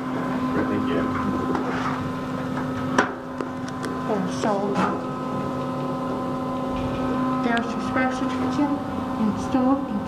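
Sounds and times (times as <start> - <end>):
elevator humming: 0.0 - 10.0.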